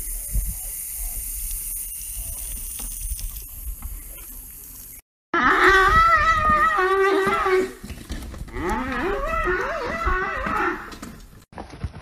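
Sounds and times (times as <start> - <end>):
cow mooing: 8.5 - 11.0.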